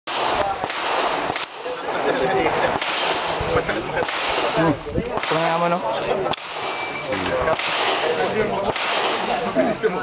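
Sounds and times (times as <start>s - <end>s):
gunshot cracks: 0.1s - 3.4s, 4.0s - 6.8s, 7.4s - 9.4s
voices talking: 0.1s - 10.0s.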